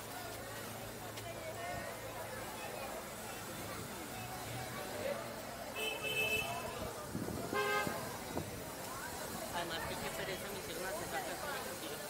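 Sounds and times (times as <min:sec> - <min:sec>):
street chatter: 0:00.0 - 0:12.0
traffic: 0:00.0 - 0:12.0
car horn toots: 0:07.6 - 0:07.9.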